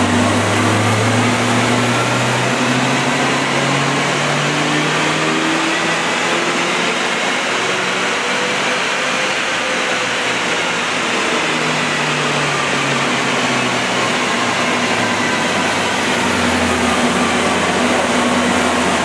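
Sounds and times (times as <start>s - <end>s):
car engine running under load: 0.0s - 19.0s.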